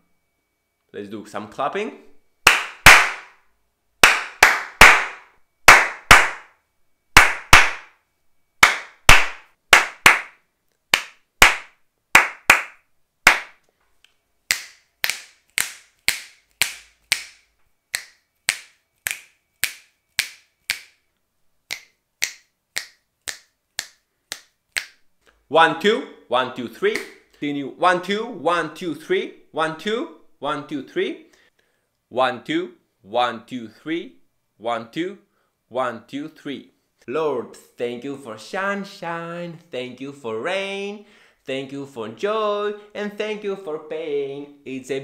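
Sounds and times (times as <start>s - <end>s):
sharp hand claps with room echo: 2.5s - 3.4s, 4.0s - 6.6s, 7.2s - 8.0s, 8.6s - 13.6s, 14.5s - 21.0s, 21.7s - 25.0s, 26.9s - 27.2s.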